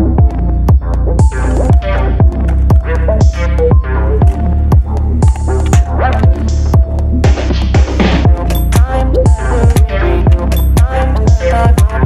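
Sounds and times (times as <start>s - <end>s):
electronic music with heavy bass: 0.0s - 12.0s.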